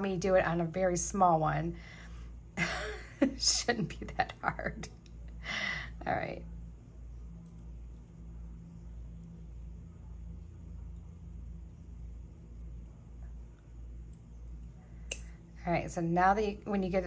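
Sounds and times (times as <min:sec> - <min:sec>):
low room hum: 0:00.0 - 0:17.0
small pliers clicks: 0:15.1 - 0:15.3.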